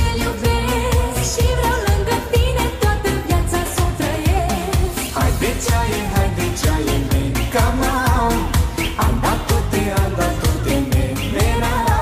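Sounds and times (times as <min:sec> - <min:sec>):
pop song with singing: 0:00.0 - 0:12.0.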